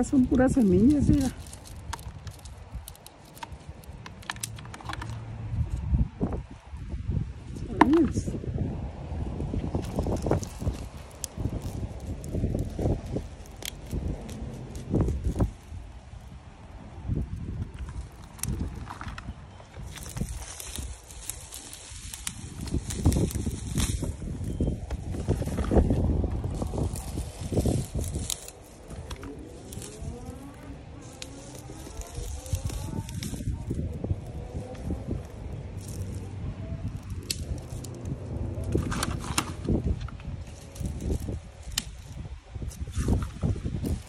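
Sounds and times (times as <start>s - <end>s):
dry plant stems crackling: 0.0s - 8.3s, 9.0s - 44.0s
low rumble: 5.0s - 44.0s.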